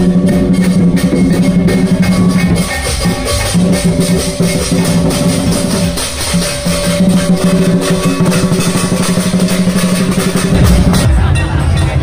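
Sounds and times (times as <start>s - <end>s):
fast drumming: 0.0s - 12.0s.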